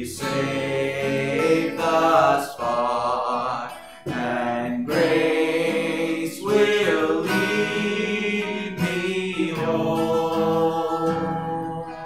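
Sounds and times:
acoustic guitar strumming: 0:00.0 - 0:12.0
man singing a hymn: 0:00.0 - 0:12.0.

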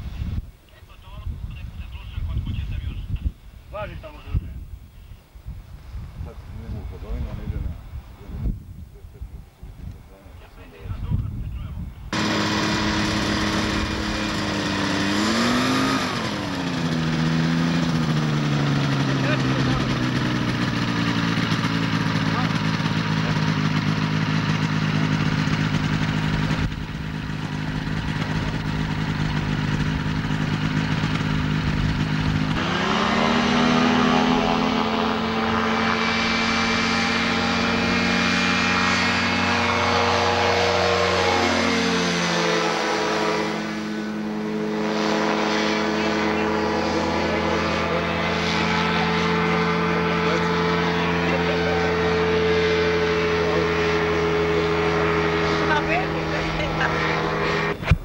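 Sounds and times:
engine and propeller: 0:00.0 - 0:04.6, 0:09.9 - 0:58.0.

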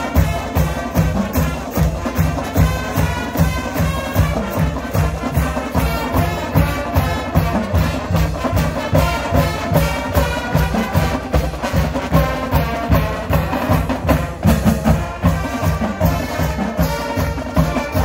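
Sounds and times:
brass playing a tune: 0:00.0 - 0:18.0
drumline beat: 0:00.0 - 0:18.0.

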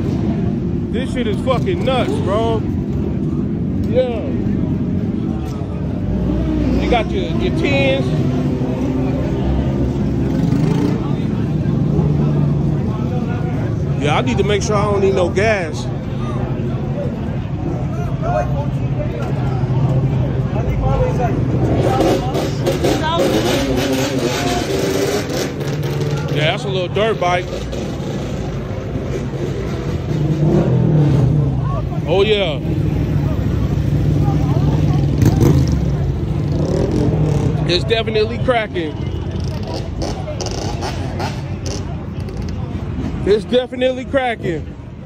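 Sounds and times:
crowd talking: 0:00.0 - 0:45.0
faint voices: 0:00.0 - 0:45.0
motorcycle engines running: 0:00.0 - 0:45.0.

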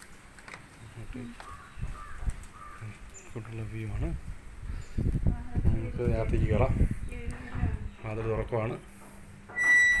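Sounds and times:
crow cawing: 0:01.4 - 0:02.9.

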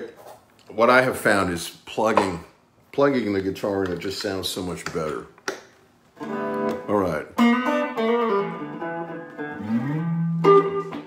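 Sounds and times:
electric guitar notes: 0:06.2 - 0:11.0.

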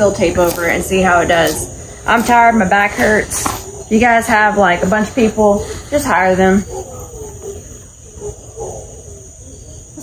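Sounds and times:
crickets chirring: 0:00.0 - 0:10.0
dog-like animal call: 0:06.6 - 0:10.0.

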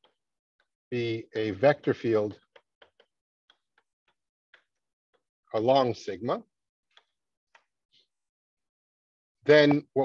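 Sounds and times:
chalk ticking on blackboard: 0:02.4 - 0:05.3.

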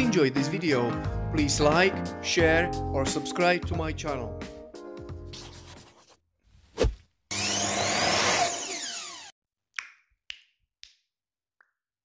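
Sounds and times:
background music: 0:00.0 - 0:06.0.

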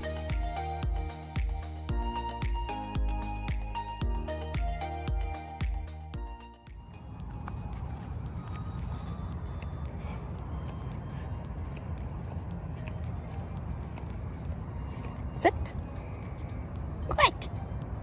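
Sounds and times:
wind and handling rumble: 0:06.6 - 0:18.0.

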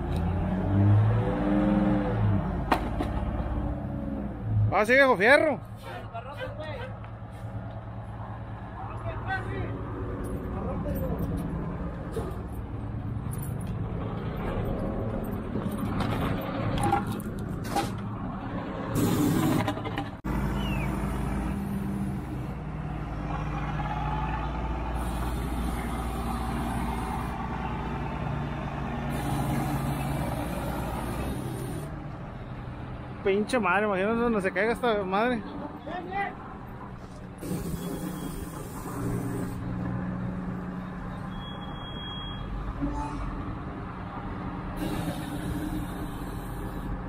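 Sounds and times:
heavy diesel engines running: 0:05.3 - 0:33.2, 0:35.5 - 0:47.0.

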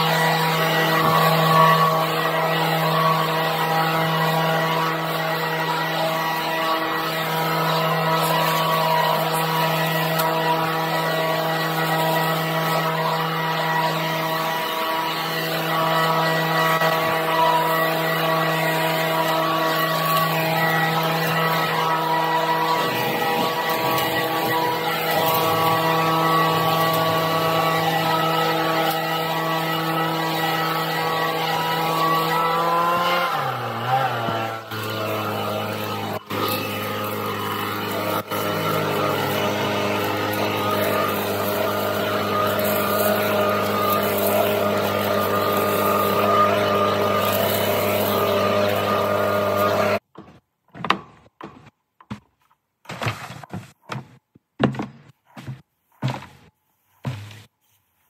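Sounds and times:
leaf blower running: 0:00.0 - 0:50.0.

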